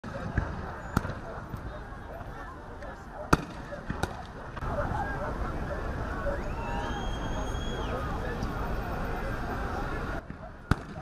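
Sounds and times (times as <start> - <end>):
distant voices murmuring: 0.0 - 11.0.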